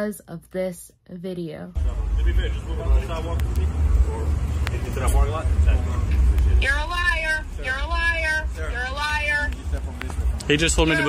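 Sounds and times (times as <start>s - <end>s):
street rumble: 1.8s - 11.0s.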